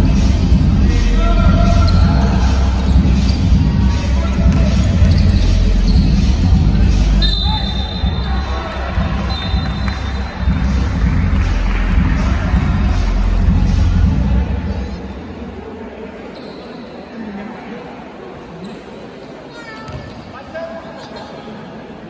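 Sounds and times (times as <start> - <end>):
players' voices: 0.0 - 22.0
basketball bouncing on court: 1.4 - 6.8.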